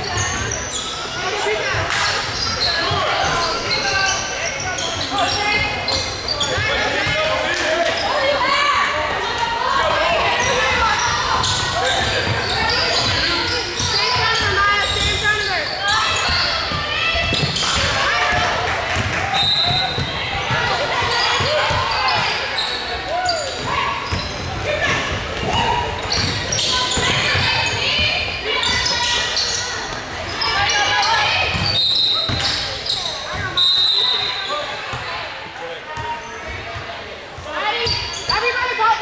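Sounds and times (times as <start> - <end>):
basketball bouncing: 16.2 - 22.3, 31.5 - 32.5.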